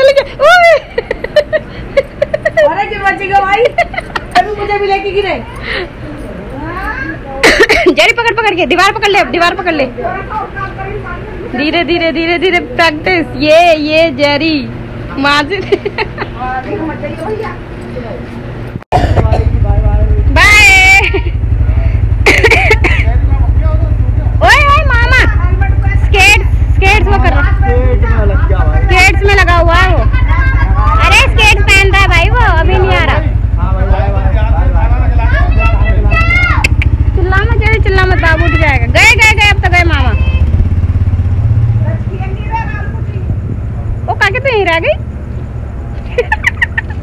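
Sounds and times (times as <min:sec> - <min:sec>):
loud voices: 0:19.0 - 0:40.8
motorcycle engine idling: 0:19.0 - 0:47.0.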